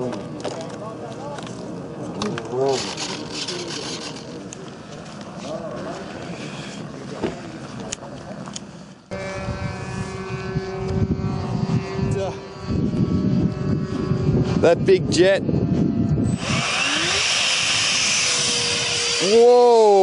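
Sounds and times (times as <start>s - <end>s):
electric ducted fan whine: 0.0s - 20.0s
wind on microphone: 9.1s - 19.4s.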